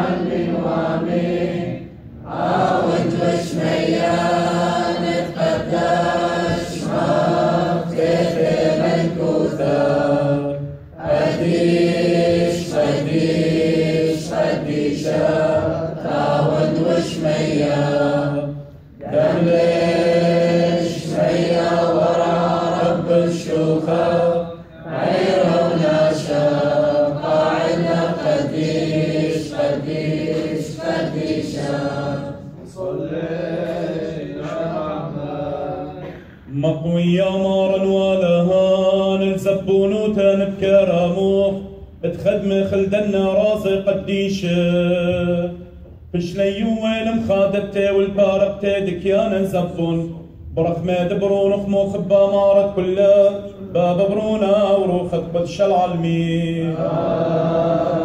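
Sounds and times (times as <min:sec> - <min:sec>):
men chanting a hymn: 0:00.0 - 0:58.0.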